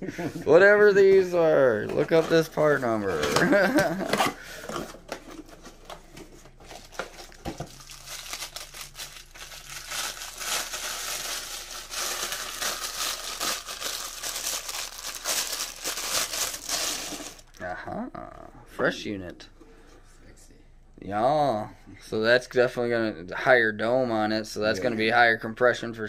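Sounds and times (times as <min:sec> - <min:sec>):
plastic wrapping crinkling: 0:03.2 - 0:17.6.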